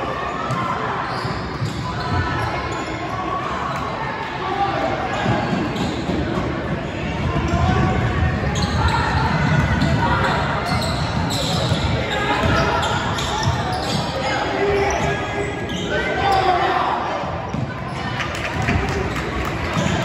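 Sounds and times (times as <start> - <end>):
spectators' voices echoing: 0.0 - 20.0.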